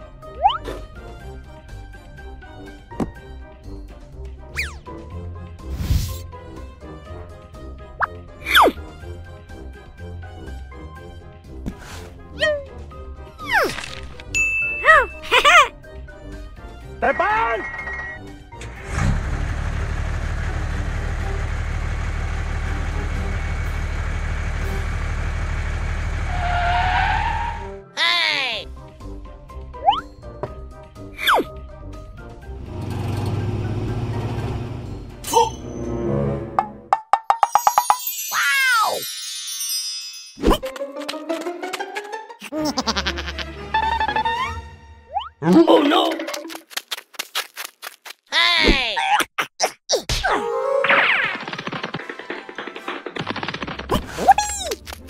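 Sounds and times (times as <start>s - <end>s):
cartoon tiptoe footsteps: 45.9s - 48.8s, 51.2s - 55.0s.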